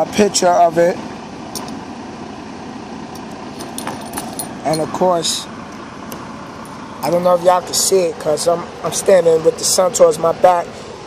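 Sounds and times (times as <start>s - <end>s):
steady background rumble and hiss: 0.0s - 11.0s.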